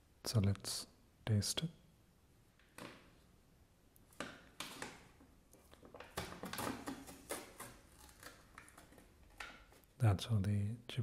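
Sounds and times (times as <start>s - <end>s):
foil seal tearing and crinkling: 5.9s - 9.2s.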